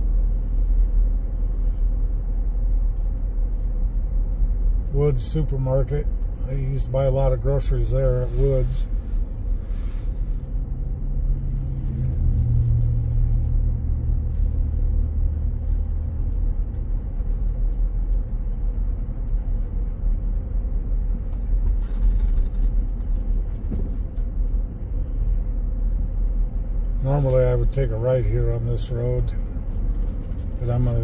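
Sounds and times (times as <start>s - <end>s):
car engine: 0.0s - 31.0s
tyre road noise: 0.0s - 31.0s.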